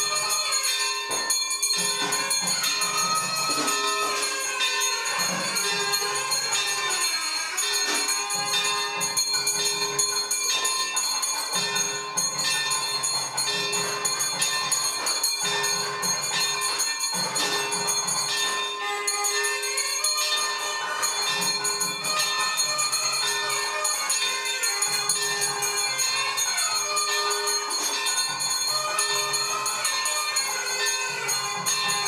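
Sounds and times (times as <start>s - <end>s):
jingling percussion: 0.0s - 32.0s
temple bells ringing rapidly: 0.0s - 32.0s.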